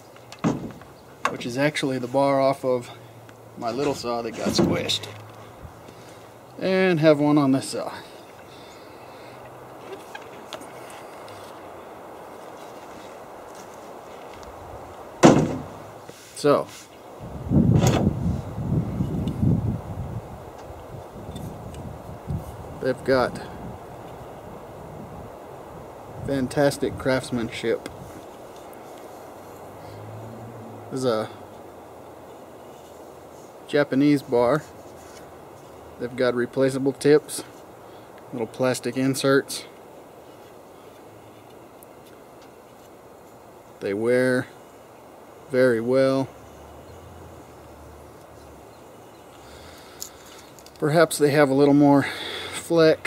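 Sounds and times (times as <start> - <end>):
outdoor background hiss: 0.0 - 53.0
sharp knock: 15.2 - 15.7
wind buffeting microphone: 17.2 - 28.2.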